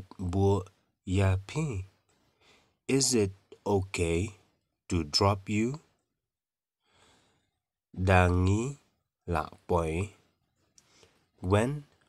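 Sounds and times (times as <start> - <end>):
person breathing in: 6.8 - 7.6.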